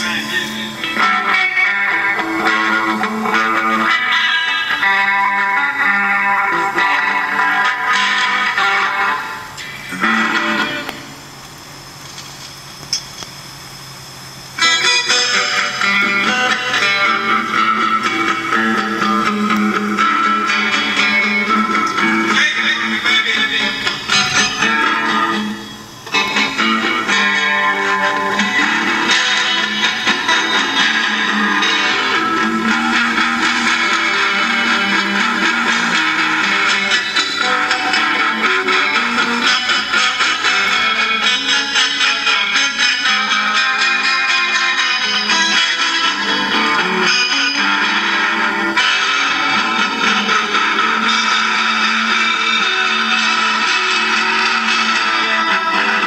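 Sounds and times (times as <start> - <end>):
electric guitar music: 0.0 - 56.0.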